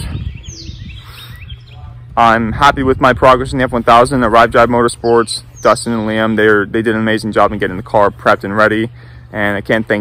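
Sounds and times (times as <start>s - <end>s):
small birds chirping: 0.0s - 3.1s, 3.7s - 10.0s
low steady rumble: 0.0s - 10.0s.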